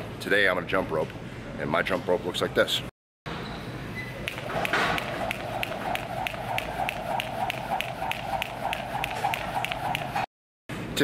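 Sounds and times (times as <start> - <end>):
steady hum: 4.2 - 10.3
jump rope and feet tapping: 4.3 - 10.3.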